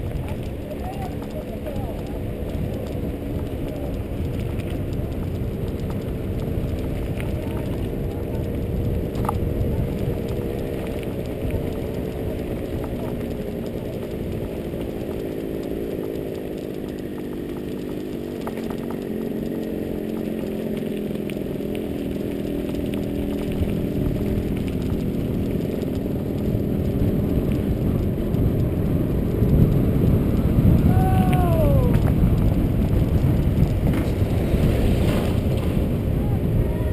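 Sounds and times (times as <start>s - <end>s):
bike tyres rumbling on dirt: 0.0s - 36.9s
wind on microphone: 0.0s - 36.9s.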